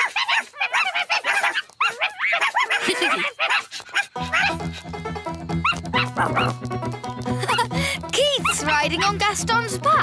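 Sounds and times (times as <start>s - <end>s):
squeaky dog-like yips: 0.0s - 4.6s, 5.6s - 6.6s
cartoon background music: 4.0s - 10.0s.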